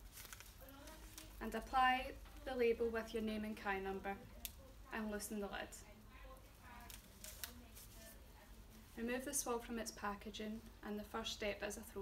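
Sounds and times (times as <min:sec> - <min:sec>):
plastic packaging rustling: 0:00.0 - 0:03.2, 0:06.3 - 0:10.0.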